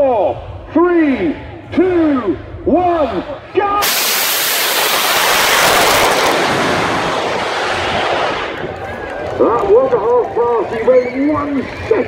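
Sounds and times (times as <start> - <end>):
rocket motor roaring: 3.8 - 9.0.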